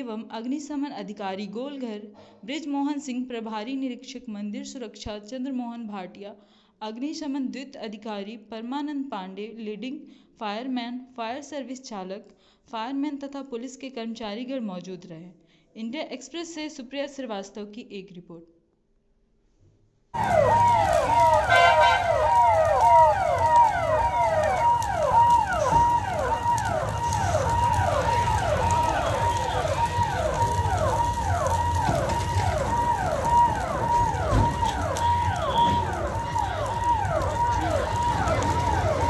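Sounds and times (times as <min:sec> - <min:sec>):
fire engine siren: 0:20.2 - 0:39.0.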